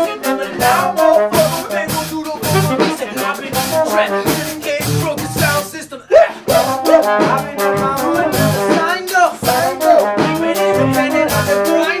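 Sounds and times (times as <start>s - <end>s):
horn line: 0.0s - 5.9s, 6.5s - 12.0s
drums: 0.0s - 12.0s.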